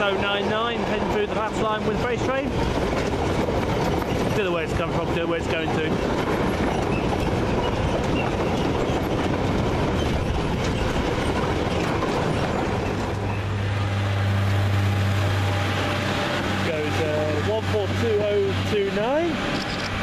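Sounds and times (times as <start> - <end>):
freight wagons rattling on rails: 0.0 - 13.6, 15.7 - 20.0
diesel train engine drone: 0.0 - 20.0.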